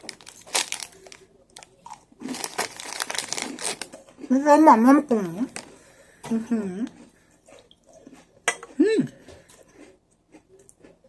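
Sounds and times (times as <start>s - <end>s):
soft chewing: 0.0s - 4.4s, 5.5s - 11.0s
cookie crunch: 0.0s - 7.0s.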